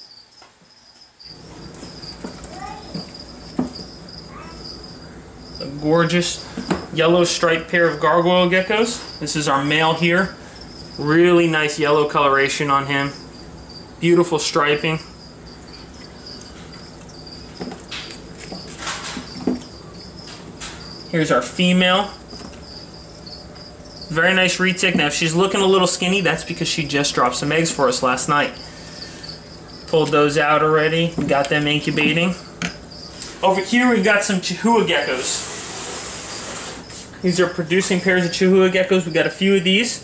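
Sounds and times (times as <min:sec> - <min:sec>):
crickets chirping: 0:00.0 - 0:40.0
plastic tub rumbling and knocking: 0:01.6 - 0:04.0, 0:17.5 - 0:21.0, 0:24.2 - 0:26.0, 0:31.0 - 0:32.8.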